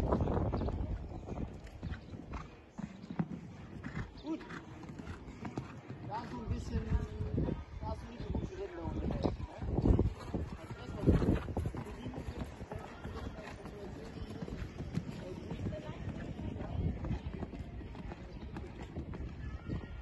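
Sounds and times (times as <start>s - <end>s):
horse hoofbeats cantering on sand: 0.0s - 20.0s.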